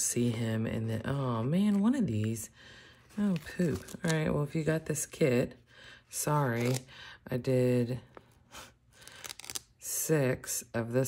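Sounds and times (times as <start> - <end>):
paper sticker sheets rustling: 3.1 - 4.6.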